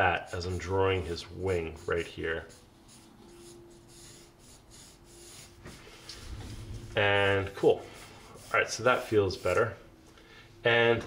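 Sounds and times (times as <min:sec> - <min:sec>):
pencil scratching on paper: 0:00.0 - 0:09.7.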